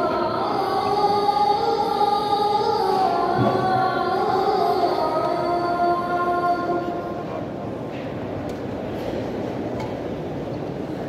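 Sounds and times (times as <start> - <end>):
man singing call to prayer: 0.0 - 7.1
murmur of large crowd: 0.0 - 11.0.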